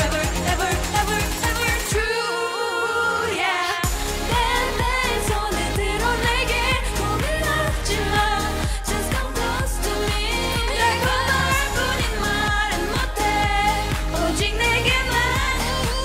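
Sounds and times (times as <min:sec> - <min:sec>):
electronic beat and bass: 0:00.0 - 0:02.2, 0:03.8 - 0:16.0
woman singing: 0:00.0 - 0:16.0.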